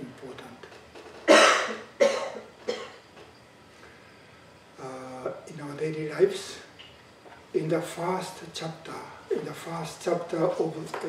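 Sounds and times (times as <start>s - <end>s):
man coughing: 1.3s - 3.0s.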